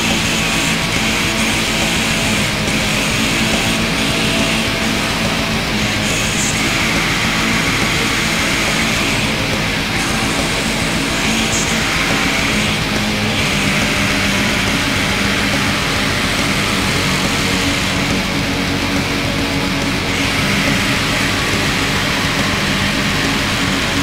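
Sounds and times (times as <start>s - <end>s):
distorted electric guitars: 0.0s - 24.0s
drums: 0.0s - 24.0s.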